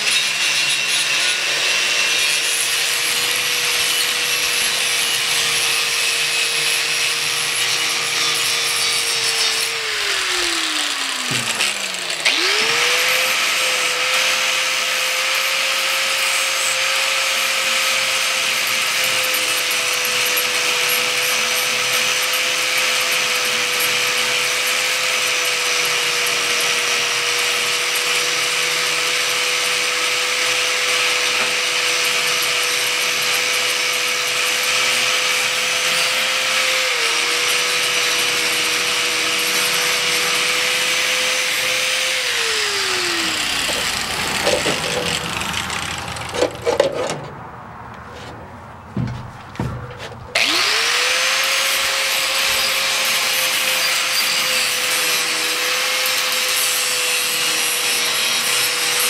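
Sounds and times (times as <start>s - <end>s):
angle grinder wire wheel scrubbing: 0.0s - 47.3s, 49.9s - 59.0s.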